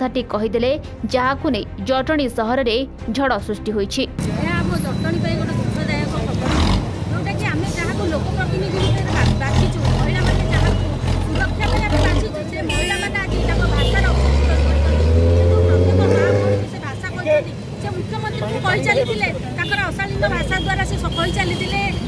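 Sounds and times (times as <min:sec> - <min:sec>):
woman talking: 0:00.0 - 0:22.0
vehicle engine accelerating: 0:04.2 - 0:07.2, 0:08.4 - 0:12.5, 0:13.2 - 0:16.8.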